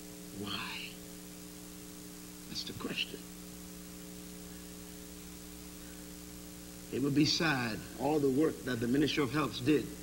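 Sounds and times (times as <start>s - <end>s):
electrical mains hum: 0.0s - 10.0s
faint tape hiss: 0.0s - 10.0s.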